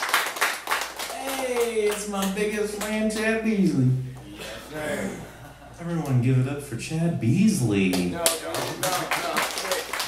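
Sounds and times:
man's voice: 0:01.1 - 0:09.9.

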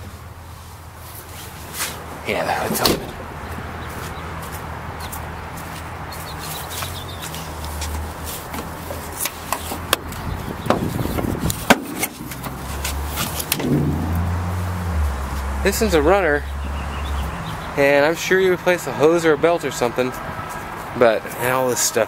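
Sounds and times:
steady low hum: 0:13.5 - 0:16.1.

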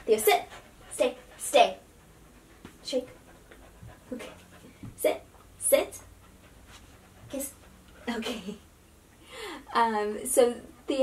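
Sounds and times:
dog panting quietly: 0:00.0 - 0:08.8, 0:10.3 - 0:11.0.

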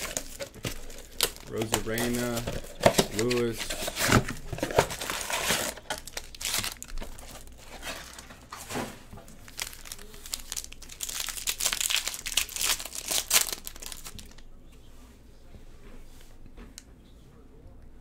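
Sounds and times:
plastic wrapper crinkling and tearing: 0:00.0 - 0:14.4.

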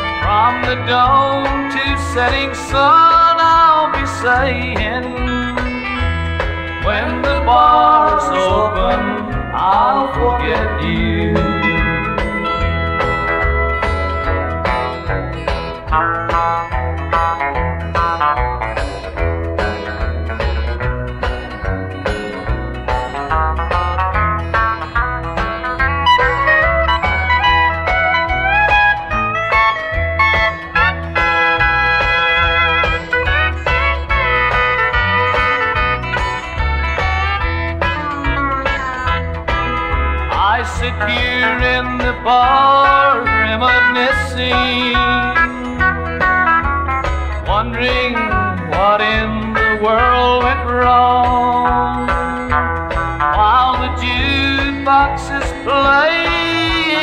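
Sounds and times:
person singing: 0:00.0 - 0:06.0, 0:06.7 - 0:14.9, 0:40.3 - 0:46.2, 0:47.3 - 0:52.4, 0:53.3 - 0:57.0
steady bass beat: 0:00.0 - 0:57.0
steel guitar gliding notes: 0:00.0 - 0:57.0.

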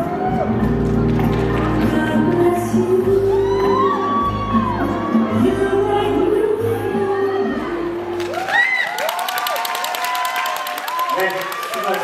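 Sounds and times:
audience whooping and cheering: 0:00.0 - 0:01.6, 0:03.0 - 0:12.0
dance music: 0:00.0 - 0:08.9
dense clapping: 0:08.2 - 0:12.0.

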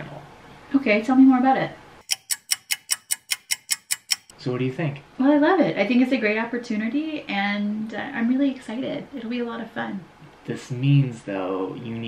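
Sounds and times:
rapid clock ticking: 0:02.0 - 0:04.3.

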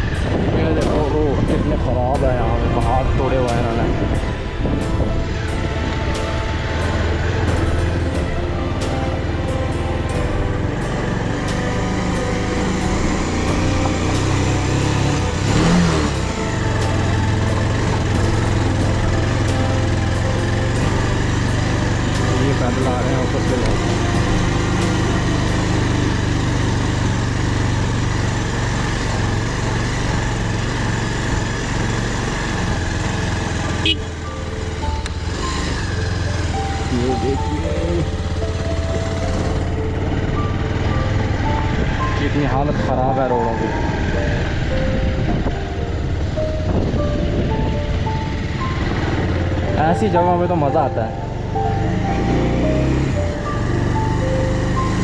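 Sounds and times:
background music with steady beat: 0:00.0 - 0:26.3
motorcycle engine running: 0:00.0 - 0:55.0.

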